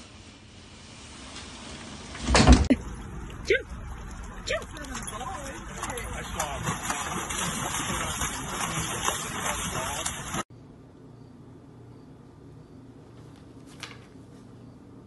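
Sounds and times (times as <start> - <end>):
fountain running water: 2.7 - 10.5
dog splashing through water: 2.8 - 10.5.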